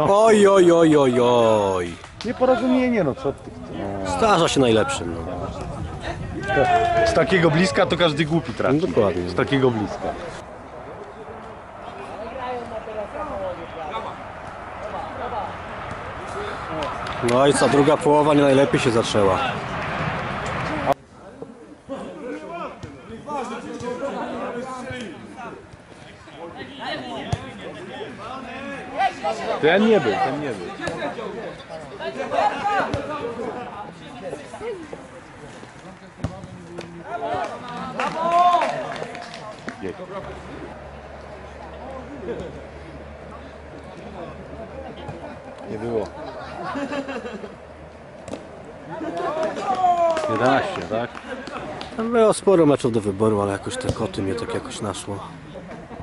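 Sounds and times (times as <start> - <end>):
faint voices talking: 0.0 - 56.0
men shouting: 6.4 - 7.7.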